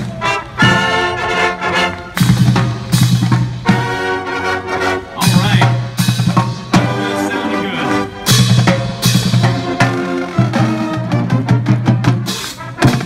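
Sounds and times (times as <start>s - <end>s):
snare and bass drums: 0.0s - 4.2s, 5.0s - 7.2s, 8.2s - 13.0s
loud low brass notes: 0.0s - 13.0s
marching band playing: 0.0s - 13.0s.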